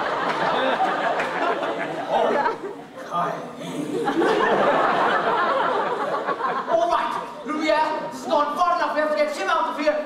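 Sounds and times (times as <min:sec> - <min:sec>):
actors speaking dialogue: 0:02.0 - 0:04.0, 0:06.6 - 0:10.0.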